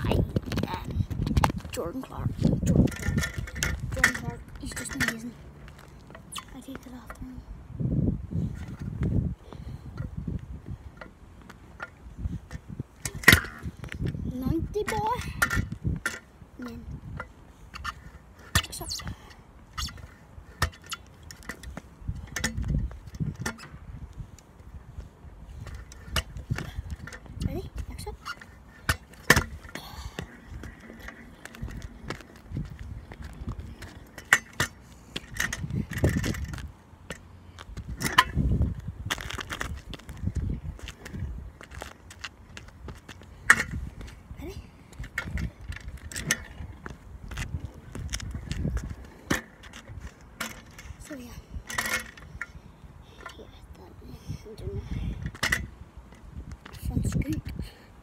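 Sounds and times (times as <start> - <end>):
scooter clattering on asphalt: 0.0 - 7.4, 9.9 - 53.6, 54.5 - 57.8.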